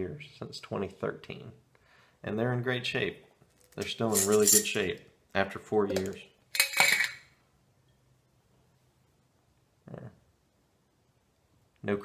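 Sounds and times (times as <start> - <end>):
metal jar lid scraping and clinking: 3.6 - 4.9, 5.9 - 7.3.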